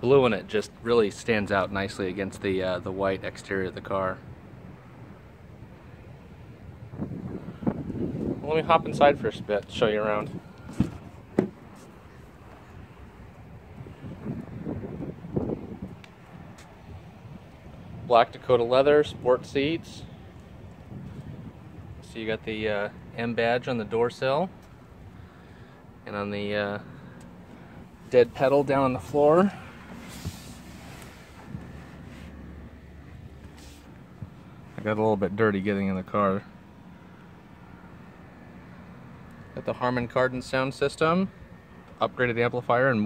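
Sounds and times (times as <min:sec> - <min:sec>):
wind rumbling on microphone: 0:04.4 - 0:23.1, 0:27.8 - 0:34.5
soft knocks: 0:10.7 - 0:11.6
rustling: 0:29.7 - 0:32.4, 0:33.4 - 0:34.8.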